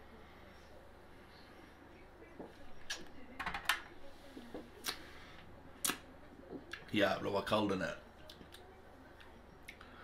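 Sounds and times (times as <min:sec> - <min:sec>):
lip smacks and clicks: 0:05.8 - 0:06.1.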